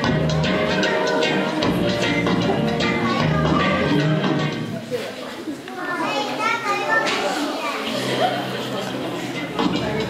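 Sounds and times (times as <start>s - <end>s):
music: 0.0s - 4.9s, 7.8s - 10.0s
children chattering and calling out: 0.0s - 10.0s.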